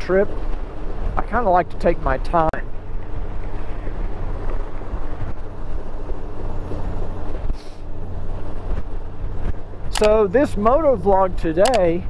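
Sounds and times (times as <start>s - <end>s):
wind and road noise: 0.0s - 12.0s
brief hiss: 7.5s - 7.9s.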